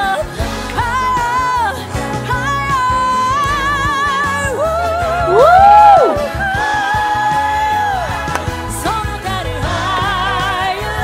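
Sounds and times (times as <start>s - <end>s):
band accompaniment: 0.0s - 11.0s
woman singing pop: 0.0s - 11.0s.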